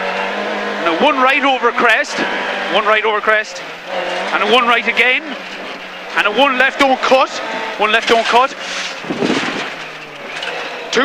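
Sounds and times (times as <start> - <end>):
car engine running hard: 0.0 - 11.0
tyre and road noise: 0.0 - 11.0.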